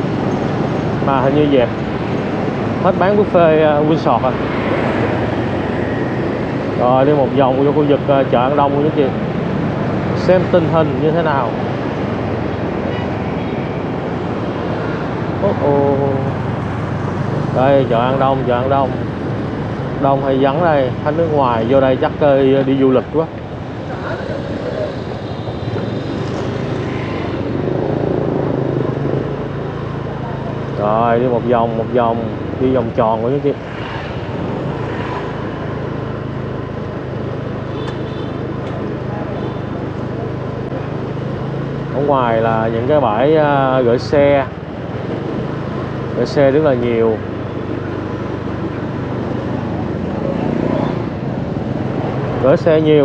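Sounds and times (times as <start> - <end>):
street traffic noise: 0.0 - 53.0.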